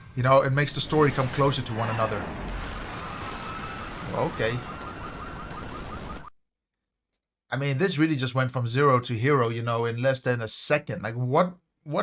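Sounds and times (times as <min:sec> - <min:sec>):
explosion and debris noise: 0:00.4 - 0:06.3.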